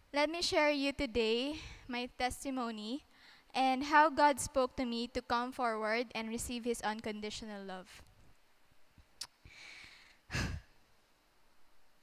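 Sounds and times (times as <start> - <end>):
faint breath in: 3.1 - 3.5, 9.4 - 10.7
mouth click: 9.2 - 9.5.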